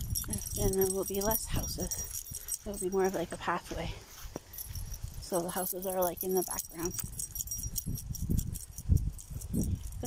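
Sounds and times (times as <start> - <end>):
faint metallic jingling: 0.0 - 10.0
wind buffeting microphone: 0.0 - 10.0.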